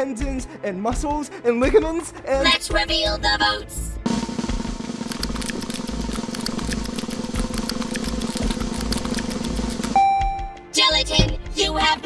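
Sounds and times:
loud drum hit: 4.1s - 5.1s
snare drum roll: 4.1s - 6.7s.

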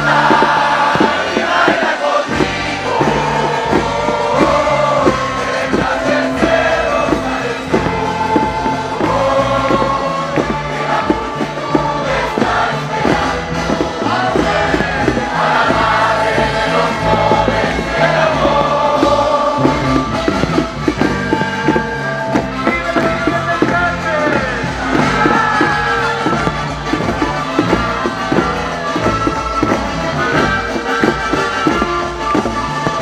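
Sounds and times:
crowd noise: 0.0s - 33.0s
many voices singing: 0.0s - 33.0s
music with beat and bass line: 0.0s - 33.0s.

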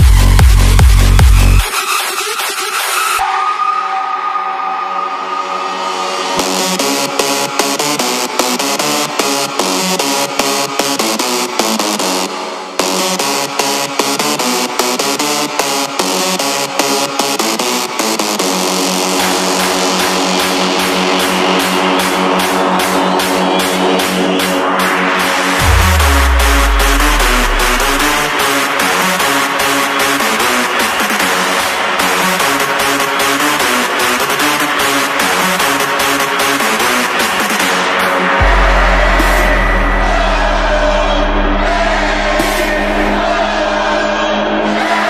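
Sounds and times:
electronic dance music drums: 0.0s - 45.0s
noise sweep: 25.6s - 28.4s, 38.3s - 44.8s
held synthesizer chord: 38.3s - 44.8s.

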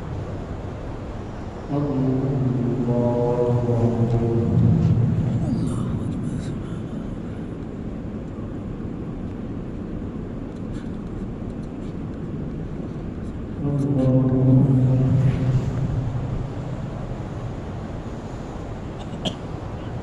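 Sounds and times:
steady rumbling noise: 0.0s - 20.0s
man talking: 1.7s - 7.2s, 13.6s - 15.8s.

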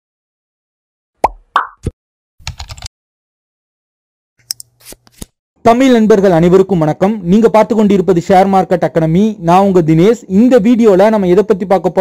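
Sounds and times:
popping sound effects: 1.2s - 2.0s.

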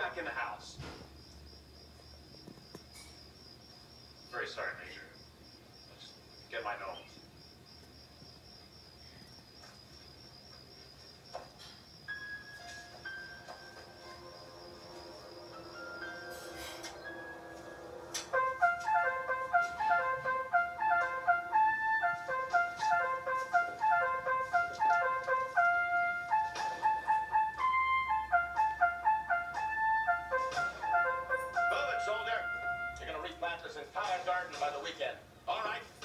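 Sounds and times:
bouncy staccato woodwind melody: 16.8s - 33.4s.

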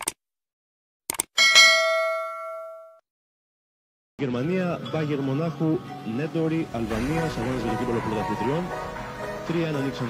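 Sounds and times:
bell ding: 1.4s - 3.0s.

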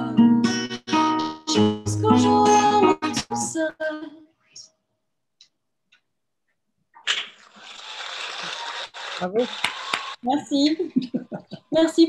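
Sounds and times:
applause: 9.5s - 10.2s.

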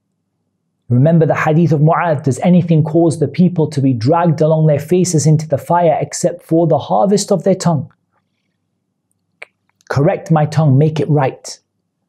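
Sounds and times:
man talking: 0.9s - 7.9s, 9.9s - 11.6s.

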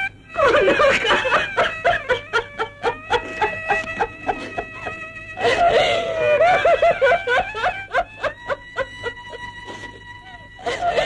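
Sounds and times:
soft string music: 0.0s - 11.0s
woman sobbing: 0.4s - 11.0s.

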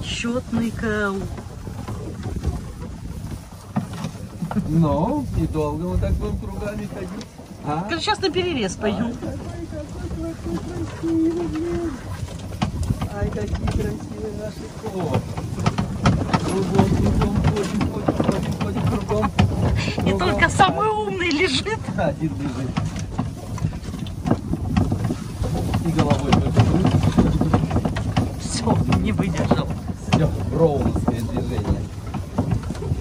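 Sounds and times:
wind rumble on microphone: 0.0s - 33.0s.

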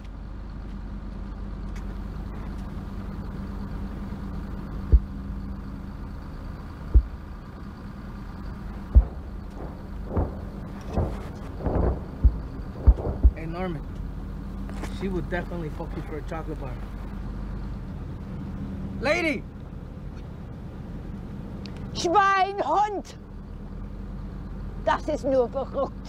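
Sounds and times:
tank engine idling: 0.0s - 26.0s
thuds: 4.9s - 5.2s, 6.9s - 7.4s, 8.6s - 13.6s
deep booms: 4.9s - 5.3s, 6.9s - 7.4s, 8.6s - 13.9s.

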